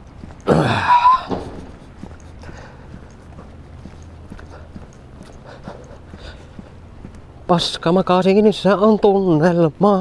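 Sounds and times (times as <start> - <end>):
steady low rumble: 0.0 - 8.7
footsteps on paved sidewalk: 0.0 - 10.0.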